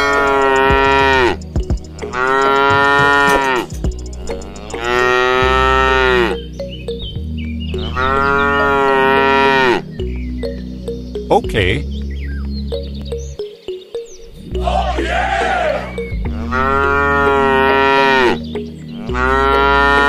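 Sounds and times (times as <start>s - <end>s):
toy cow mooing: 16.5s - 18.4s.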